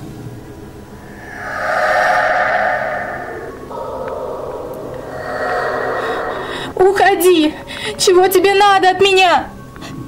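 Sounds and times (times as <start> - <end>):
eerie ambient drone: 0.7 - 8.1.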